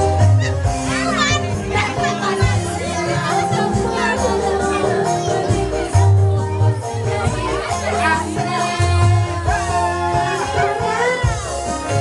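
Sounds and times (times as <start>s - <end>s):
loud amplified live music: 0.0s - 12.0s
woman singing into a microphone: 0.4s - 12.0s.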